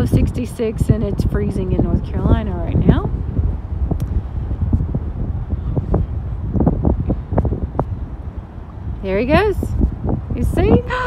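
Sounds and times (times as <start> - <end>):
breeze buffeting microphone: 0.0 - 11.0.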